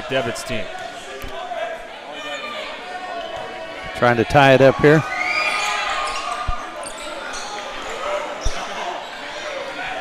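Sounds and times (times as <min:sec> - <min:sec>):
murmur of crowd: 0:00.0 - 0:10.0.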